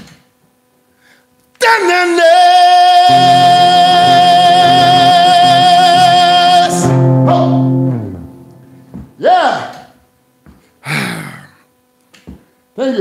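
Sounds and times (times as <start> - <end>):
man singing high note: 1.6 - 8.8
acoustic guitar: 3.0 - 9.2.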